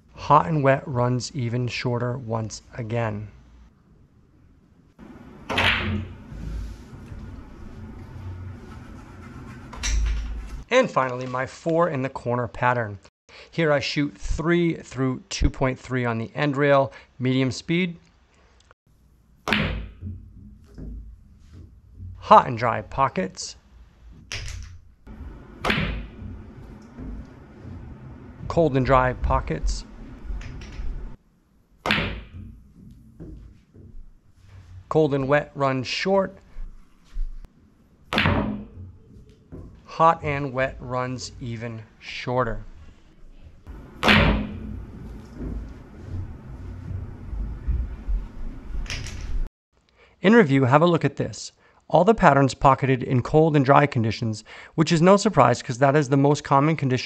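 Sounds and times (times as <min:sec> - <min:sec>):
cue striking balls: 0:05.0 - 0:10.2, 0:19.4 - 0:22.2, 0:25.1 - 0:31.2, 0:31.8 - 0:34.0, 0:38.1 - 0:39.8, 0:43.7 - 0:49.1
balls knocking: 0:19.5 - 0:22.2, 0:24.0 - 0:31.2, 0:31.8 - 0:34.2, 0:43.7 - 0:49.4
balls rolling on cloth: 0:25.1 - 0:31.2, 0:44.6 - 0:49.5
ball knocking off cushions: 0:25.3 - 0:27.2, 0:31.8 - 0:34.0, 0:38.1 - 0:39.8, 0:43.7 - 0:46.3.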